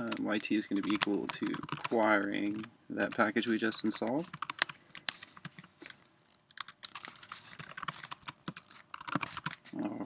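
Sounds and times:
computer keyboard typing: 0:00.0 - 0:03.3, 0:04.2 - 0:09.6.

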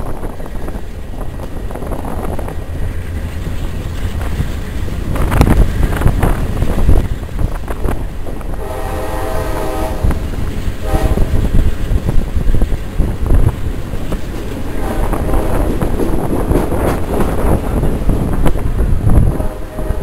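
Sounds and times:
train rumbling: 0:00.0 - 0:20.0
wind noise: 0:00.0 - 0:20.0
train horn: 0:08.5 - 0:11.5, 0:14.8 - 0:15.8, 0:19.2 - 0:20.0.

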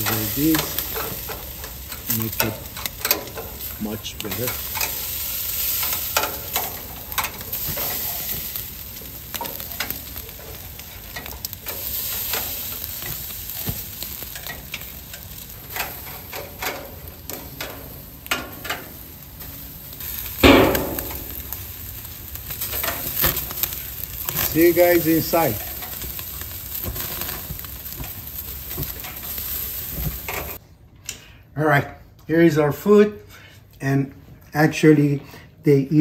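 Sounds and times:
metal skewers clinking: 0:00.0 - 0:08.4, 0:22.5 - 0:27.4
crackles and pops: 0:00.0 - 0:30.6
meat sizzling on a grill: 0:00.0 - 0:30.6.

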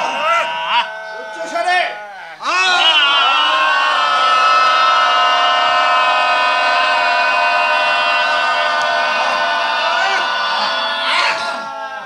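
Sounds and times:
men shouting together: 0:00.0 - 0:12.0.

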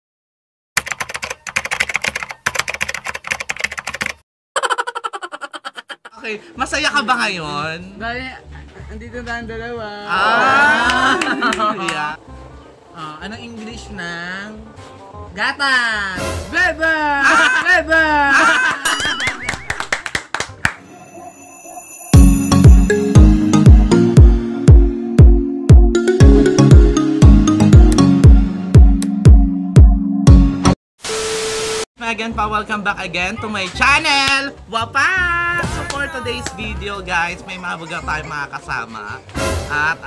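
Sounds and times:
rapid keyboard typing: 0:00.8 - 0:04.2
wobbling laugh-like sound effect: 0:04.6 - 0:06.2, 0:17.2 - 0:19.9
intro music with high tones: 0:20.8 - 0:30.6.

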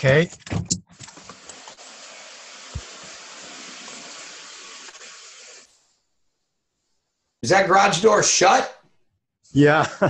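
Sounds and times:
steady hiss: 0:01.0 - 0:06.1.

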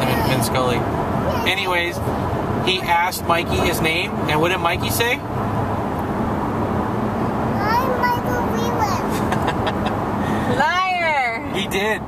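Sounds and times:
road and engine noise in car: 0:00.0 - 0:12.0.

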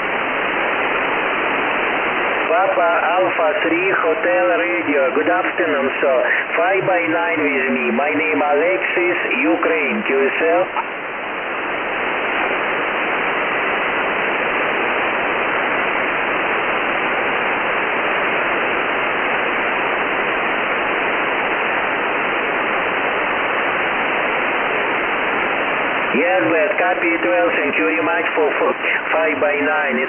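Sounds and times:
shortwave radio hiss: 0:00.0 - 0:30.0.

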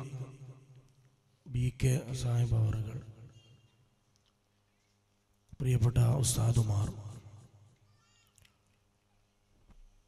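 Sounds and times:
faint high-pitched cry: 0:07.8 - 0:08.8.

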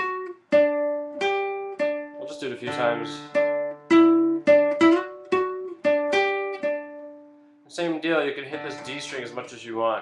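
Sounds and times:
classical guitar single-note riff: 0:00.0 - 0:07.5, 0:08.5 - 0:09.5.

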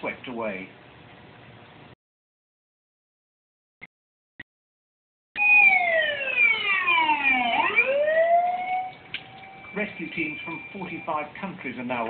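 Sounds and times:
siren wailing: 0:05.4 - 0:11.3.

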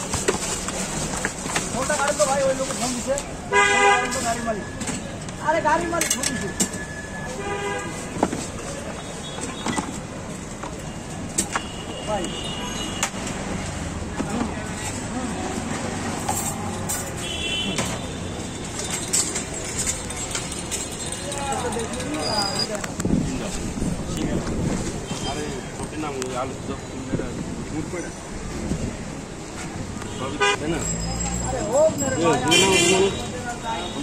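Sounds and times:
street traffic noise: 0:00.0 - 0:34.0
vehicle horn: 0:07.4 - 0:08.0, 0:17.2 - 0:18.4, 0:30.1 - 0:30.7, 0:32.5 - 0:34.0
wind rumbling on microphone: 0:22.9 - 0:25.1.

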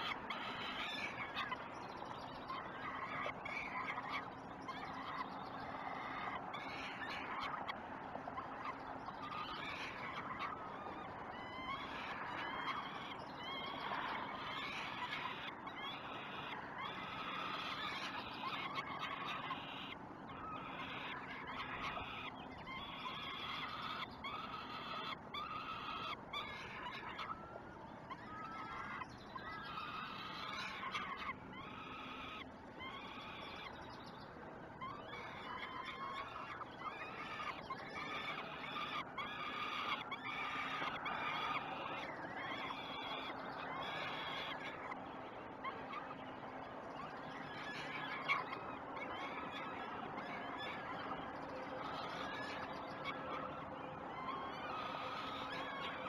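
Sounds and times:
falcon chicks begging cries: 0:00.0 - 0:56.0.

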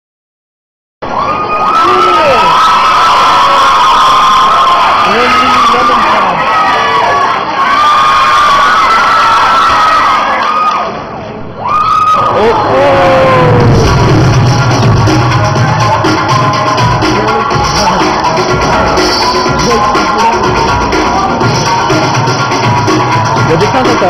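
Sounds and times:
audience cheering and screaming: 0:01.0 - 0:24.0.

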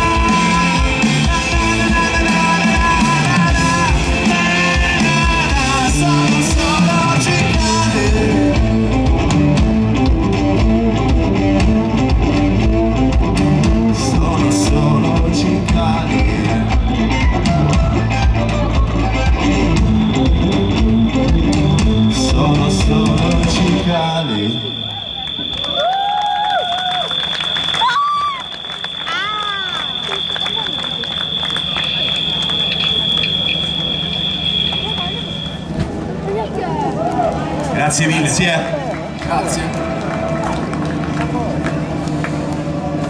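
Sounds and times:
rock band playing: 0:00.0 - 0:25.6
high steady ringing tone: 0:19.6 - 0:35.8
audience cheering and applauding: 0:24.3 - 0:43.0
amplifier hum: 0:27.1 - 0:36.3.

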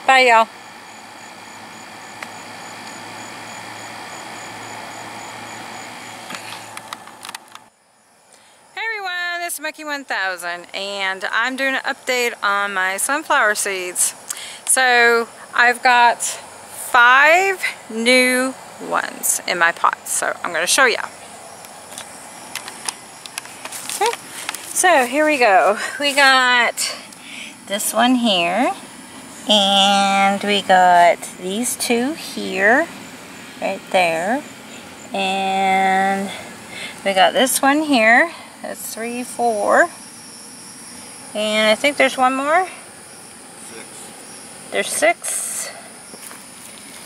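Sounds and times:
background hum and hiss: 0:00.0 - 0:47.0.

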